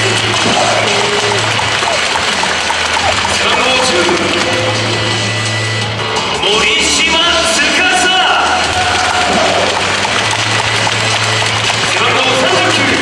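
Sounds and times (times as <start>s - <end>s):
music over public address: 0.0s - 13.0s
announcer speaking: 2.8s - 5.8s, 6.4s - 8.7s, 11.9s - 13.0s.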